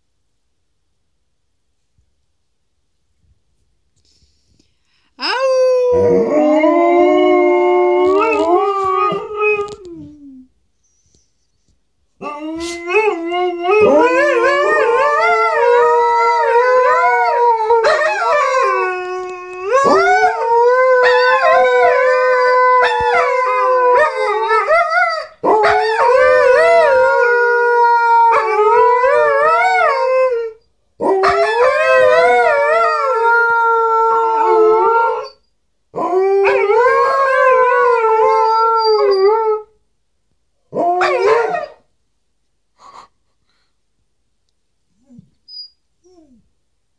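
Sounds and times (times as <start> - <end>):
dogs howling together: 5.4 - 10.4, 12.2 - 35.4, 36.0 - 39.7, 40.7 - 41.8.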